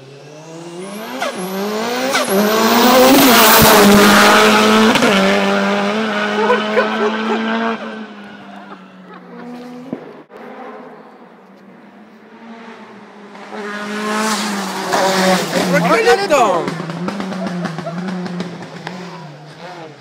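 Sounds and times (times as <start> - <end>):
race car engine at full throttle: 0.0 - 20.0.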